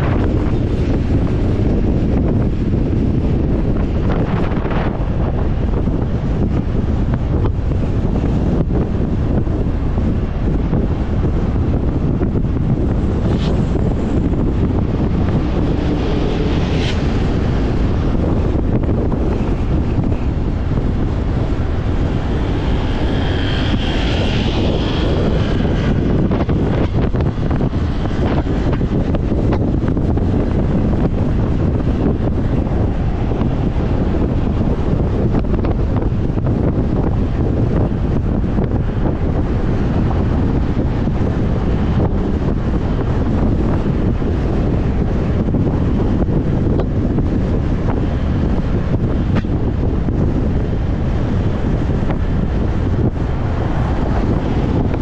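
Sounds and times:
motorcycle running: 0:00.0 - 0:55.0
road noise: 0:00.0 - 0:55.0
wind rush on microphone: 0:00.0 - 0:55.0.

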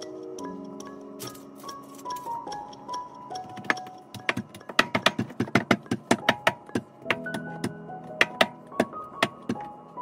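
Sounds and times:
rolling pin clacking on countertop: 0:03.6 - 0:09.6.

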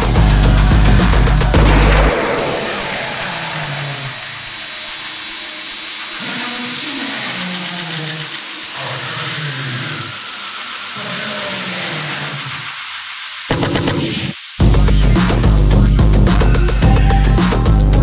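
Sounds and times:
steady hiss: 0:00.0 - 0:17.9
gliding low synth tones: 0:01.3 - 0:05.0.

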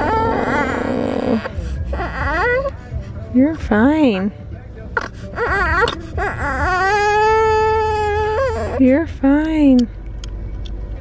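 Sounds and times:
infant crying: 0:00.0 - 0:02.8, 0:05.0 - 0:08.9.

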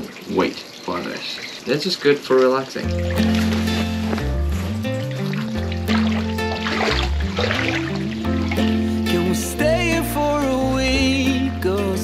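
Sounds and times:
background song with bass line: 0:02.9 - 0:12.0.

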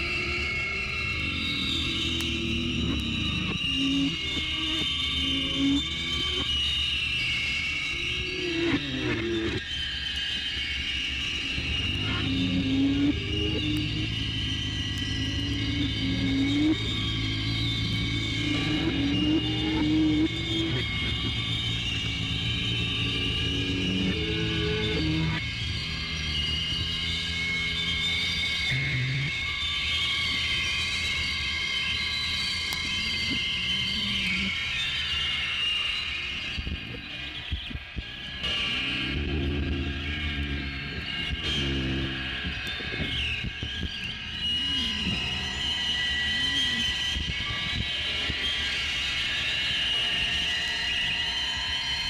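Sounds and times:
low rumbling drone: 0:00.0 - 0:09.7, 0:11.2 - 0:35.9, 0:38.2 - 0:52.0
high ringing tone: 0:00.0 - 0:52.0.

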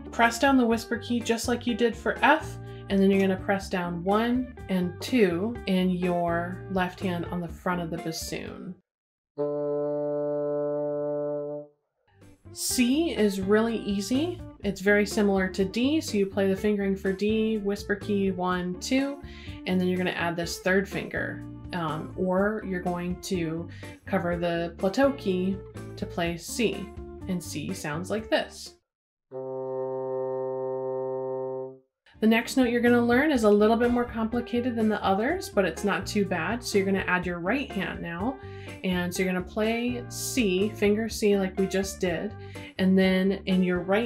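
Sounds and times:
bassoon holding a low note: 0:29.3 - 0:31.8.

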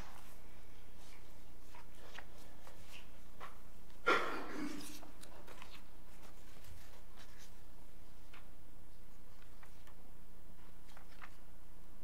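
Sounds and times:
papers rustling: 0:00.0 - 0:03.6, 0:04.7 - 0:10.0, 0:10.6 - 0:11.6.

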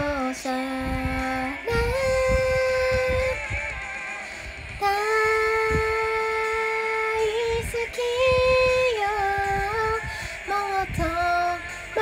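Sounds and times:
woman singing a pop song: 0:00.0 - 0:12.0.

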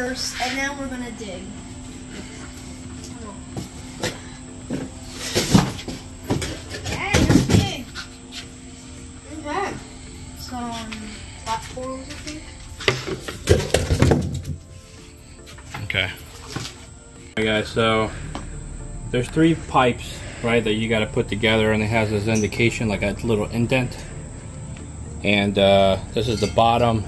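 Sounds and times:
background music: 0:00.0 - 0:27.0.

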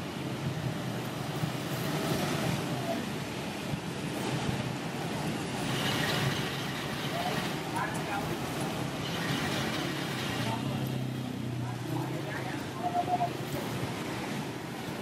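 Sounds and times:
rain: 0:00.0 - 0:15.0
scooters and cars passing: 0:00.0 - 0:15.0
tyres on wet pavement: 0:00.0 - 0:15.0.

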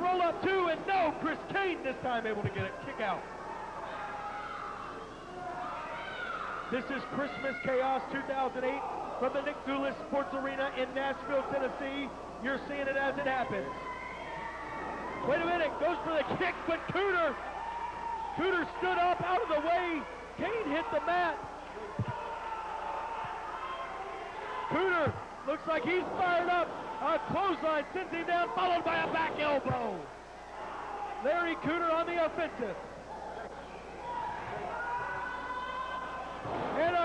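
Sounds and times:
arena crowd murmur: 0:00.0 - 0:37.0.

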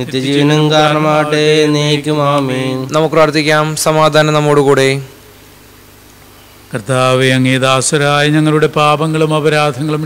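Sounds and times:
man chanting a prayer: 0:00.0 - 0:05.1, 0:06.7 - 0:10.0.

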